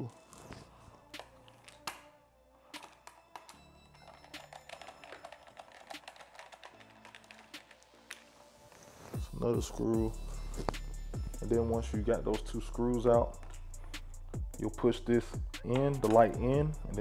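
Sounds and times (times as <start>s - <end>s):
background music: 0.0s - 17.0s.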